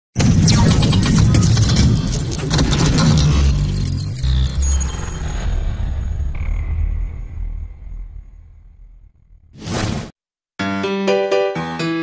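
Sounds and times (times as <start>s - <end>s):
deep rumble: 4.3s - 9.5s.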